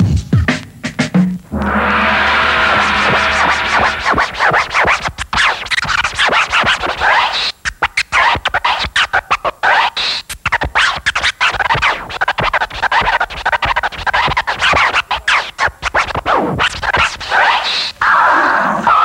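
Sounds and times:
vinyl record scratching: 1.4 - 18.0.

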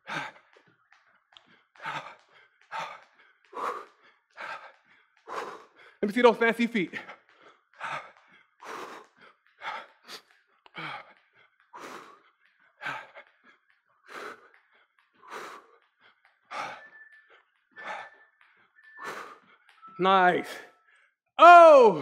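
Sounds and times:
man breathing heavily: 0.0 - 21.2.

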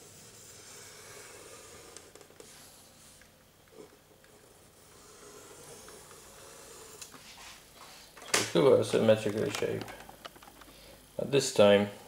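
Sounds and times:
pencil scratching on paper: 0.0 - 3.2, 4.7 - 7.0.

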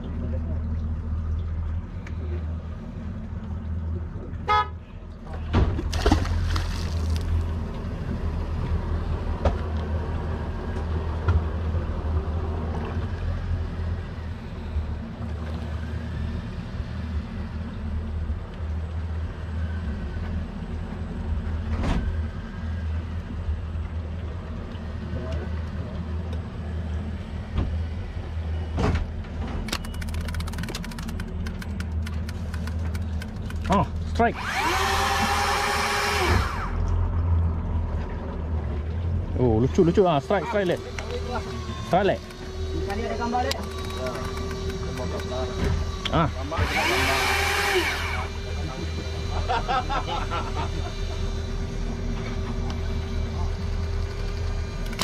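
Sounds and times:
boat engine humming: 0.0 - 55.0
loud wavering whine: 40.4 - 55.0.

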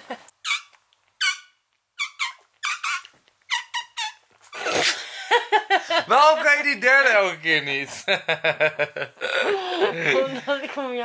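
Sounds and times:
person making squeaky mouth sounds: 0.3 - 5.0.

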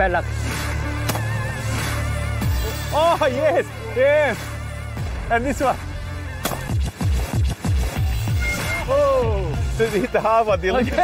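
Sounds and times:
shotgun firing: 1.0 - 1.3, 6.4 - 7.1
electronic music: 5.6 - 11.0.

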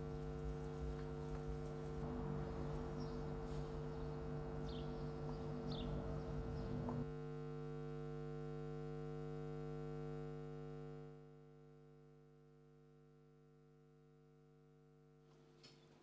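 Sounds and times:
low hum of held tones: 0.0 - 16.0.

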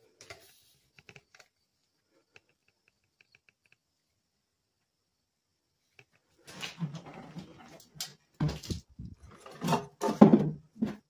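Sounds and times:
faint clicks and taps: 0.2 - 3.9.

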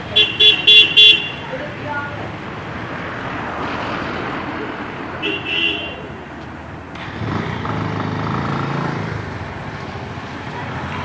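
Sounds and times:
street traffic noise: 0.0 - 11.0
vehicle horn tooting: 0.2 - 1.5, 5.2 - 6.1.

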